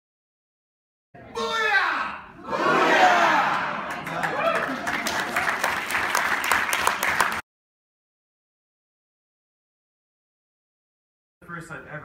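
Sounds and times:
audience applause: 0:03.0 - 0:07.4.

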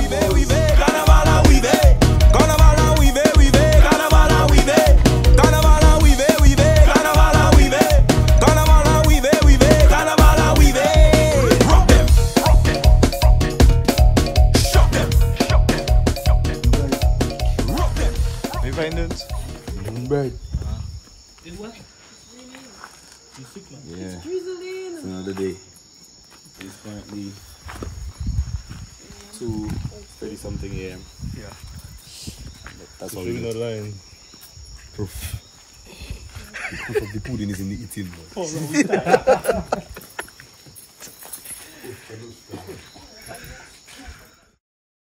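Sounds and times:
people talking indistinctly: 0:00.0 - 0:20.9
crickets trilling: 0:00.0 - 0:44.6
night insects chirring: 0:00.0 - 0:44.6.

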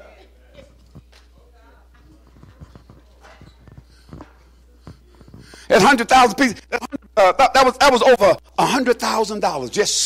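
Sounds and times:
faint irregular clicks and knocks: 0:01.9 - 0:05.6.

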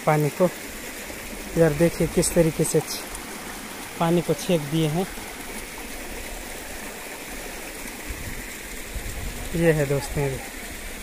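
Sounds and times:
stream flowing over rocks: 0:00.0 - 0:11.0.

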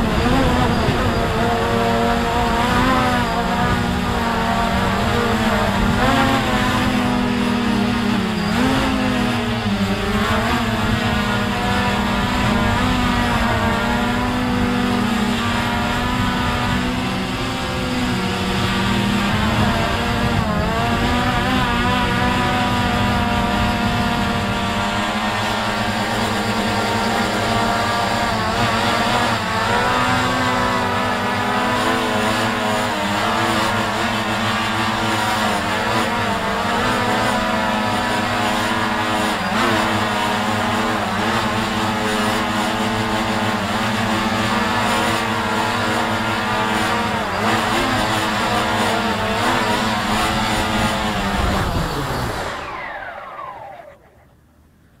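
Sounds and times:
drone propellers whirring: 0:00.0 - 0:55.0.

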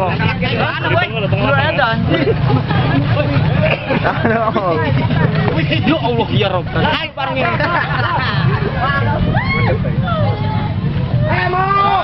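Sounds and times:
crowd babble: 0:00.0 - 0:12.0
steady low rumble: 0:00.0 - 0:12.0.

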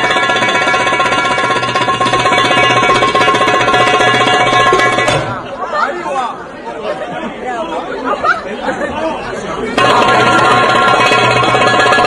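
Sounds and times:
strummed string instruments: 0:09.7 - 0:12.0.

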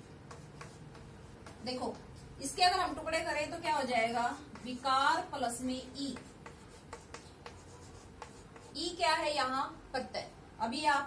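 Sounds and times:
chalk tapping on blackboard: 0:00.0 - 0:02.7, 0:04.0 - 0:09.0
chalk scratching on blackboard: 0:00.0 - 0:02.8, 0:04.0 - 0:09.2.

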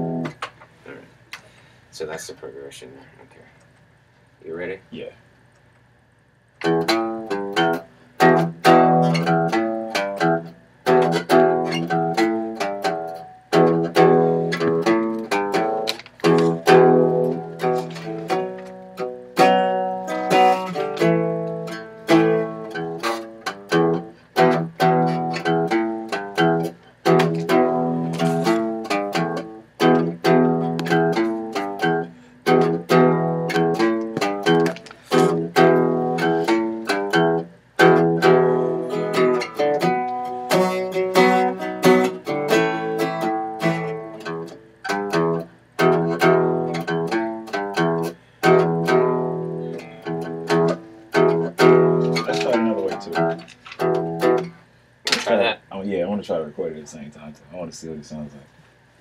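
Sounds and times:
guitar strumming chords: 0:00.0 - 0:00.4, 0:06.6 - 0:55.3.

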